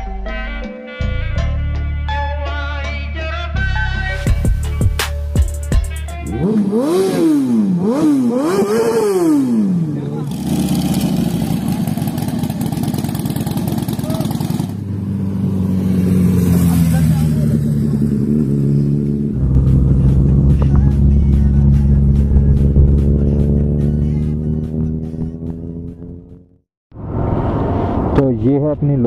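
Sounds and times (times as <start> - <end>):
motorcycle engines revving: 6.3 - 26.6
motorcycle riding rumble: 6.3 - 28.7.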